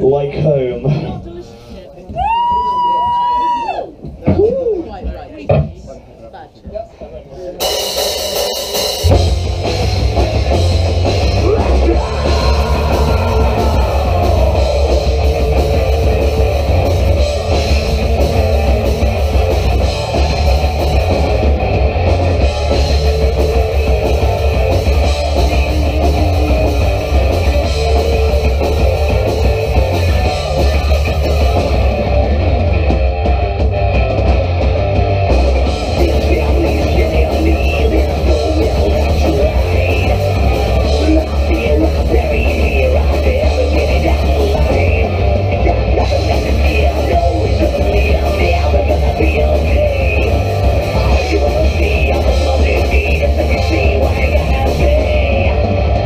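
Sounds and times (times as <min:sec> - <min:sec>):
drum kit: 0:07.5 - 0:56.0
bass guitar: 0:07.6 - 0:56.0
electric guitars: 0:08.7 - 0:56.0.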